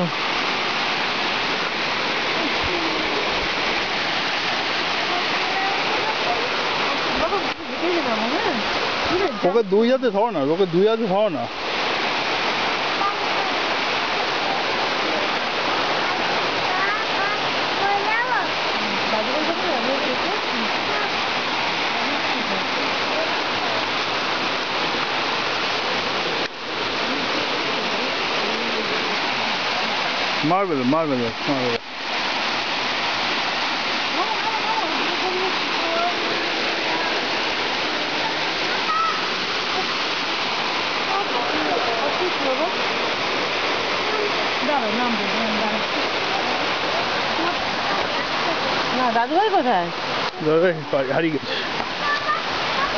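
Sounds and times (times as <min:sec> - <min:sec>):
fast-flowing stream water: 0:00.0 - 0:52.9
faint voices: 0:34.0 - 0:52.9.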